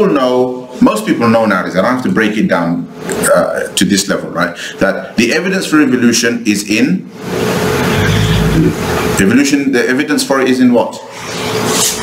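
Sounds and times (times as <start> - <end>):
loud rushing noise: 7.2 - 9.2.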